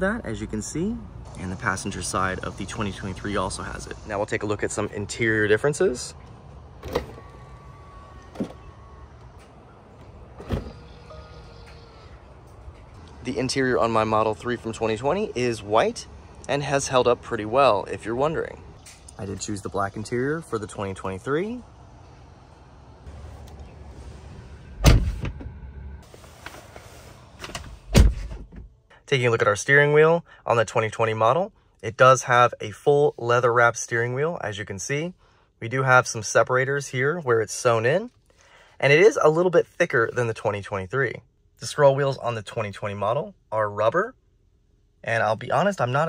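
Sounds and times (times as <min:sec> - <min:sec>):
power window motor whine: 0:07.0 - 0:11.9
thump: 0:24.8 - 0:25.5
car door shutting thud: 0:24.8 - 0:25.6, 0:27.4 - 0:28.7.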